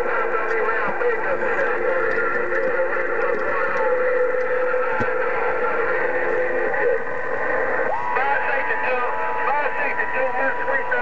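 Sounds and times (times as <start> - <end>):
faint garbled radio voices: 0.0 - 11.0
radio static hiss: 0.0 - 11.0.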